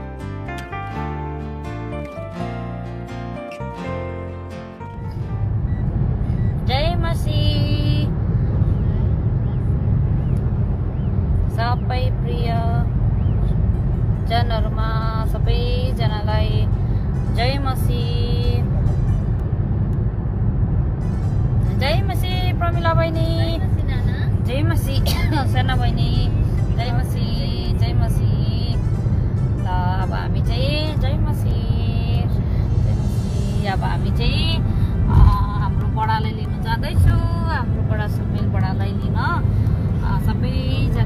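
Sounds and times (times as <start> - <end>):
car cabin rumble: 3.6 - 41.0.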